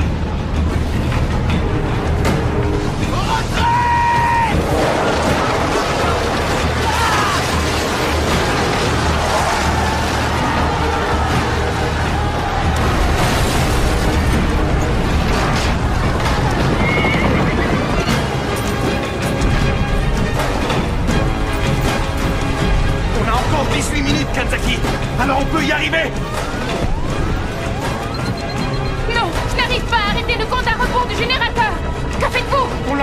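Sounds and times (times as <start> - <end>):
battle soundtrack music: 0.0 - 33.0
battle noise: 3.0 - 18.5
explosions: 4.5 - 11.8, 12.5 - 18.3
horse whinnying: 16.8 - 18.2.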